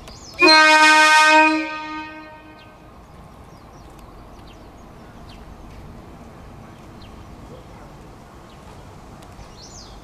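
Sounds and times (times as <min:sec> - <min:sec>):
train horn blast: 0:00.4 - 0:02.8.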